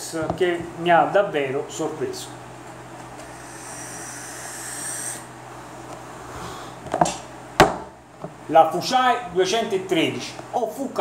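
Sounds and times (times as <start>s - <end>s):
electronic cigarette hissing whistle: 3.3s - 5.3s.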